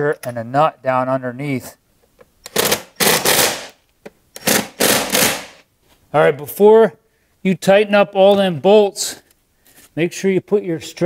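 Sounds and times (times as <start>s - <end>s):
impact driver bursts: 2.5s - 3.8s, 4.4s - 5.6s.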